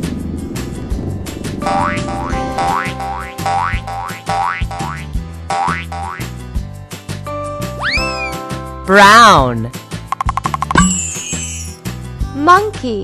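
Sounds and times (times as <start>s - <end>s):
upbeat background music: 1.6s - 13.0s.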